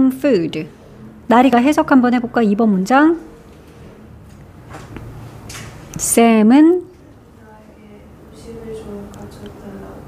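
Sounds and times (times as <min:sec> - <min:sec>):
woman's voice: 0:01.3 - 0:03.3, 0:06.0 - 0:10.0.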